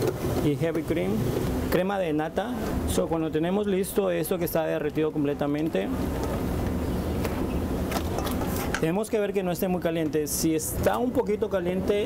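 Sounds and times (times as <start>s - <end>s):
low hum of kitchen machinery: 0.0s - 12.0s.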